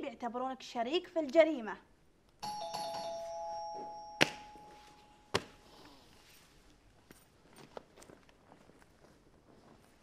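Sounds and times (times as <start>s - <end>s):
two-note doorbell chime: 2.4s - 5.2s.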